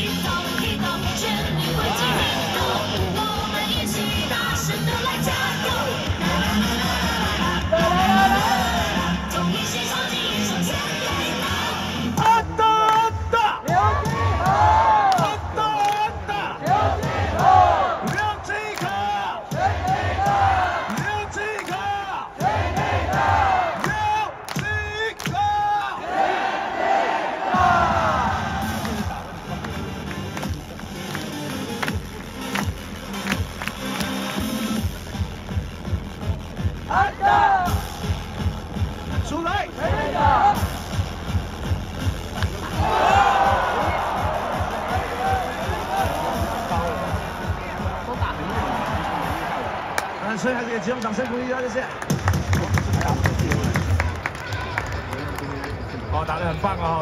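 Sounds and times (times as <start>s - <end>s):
cheer music over sound system: 0.0s - 26.0s, 27.4s - 57.0s
crowd chanting and shouting: 0.0s - 57.0s.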